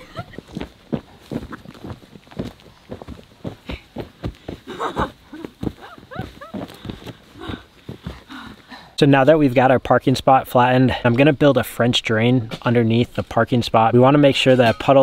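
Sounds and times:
boots stomping on dirt: 0.0s - 8.8s.

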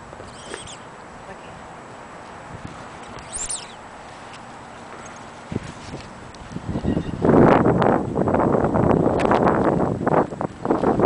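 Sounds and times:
outdoor background noise: 0.0s - 11.0s
short high chirp: 3.2s - 3.8s.

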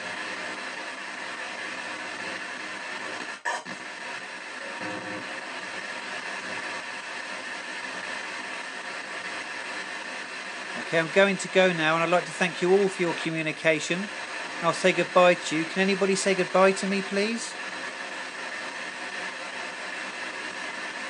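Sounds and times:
radio static hiss: 0.0s - 21.0s.

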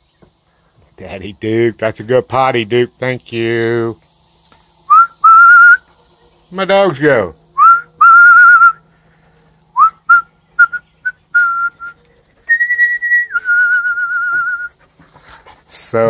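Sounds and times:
person whistling: 4.9s - 5.8s, 7.6s - 8.8s, 9.8s - 14.8s.

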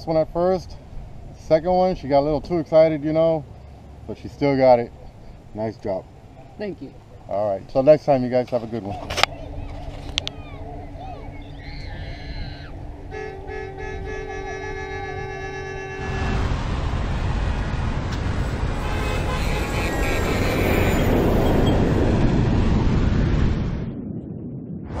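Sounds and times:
held electronic tones: 9.0s - 16.2s
horn-like chord: 9.4s - 16.7s, 18.7s - 20.9s
loud rushing whoosh: 15.9s - 25.0s.

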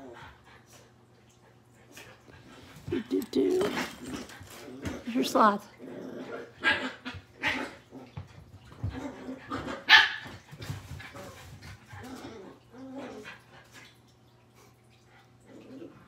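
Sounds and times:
small dogs barking: 9.4s - 10.4s.

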